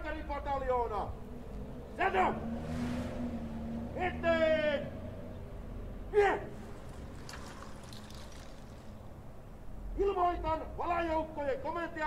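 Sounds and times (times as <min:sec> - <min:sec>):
outdoor rumble and hiss: 0:00.0 - 0:12.0
person shouting a command: 0:02.0 - 0:02.5, 0:04.0 - 0:05.0, 0:06.1 - 0:06.6, 0:10.0 - 0:12.0.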